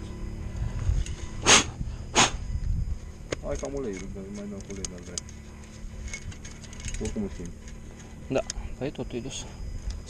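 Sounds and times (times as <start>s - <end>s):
steady low rumble: 0.0s - 10.0s
short hissing bursts: 1.4s - 2.4s.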